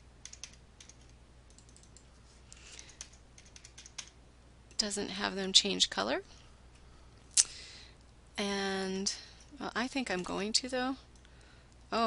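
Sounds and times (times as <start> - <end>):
keyboard keys clicking: 0.2 - 2.1, 2.9 - 4.1
woman speaking: 4.8 - 6.3, 8.4 - 11.1.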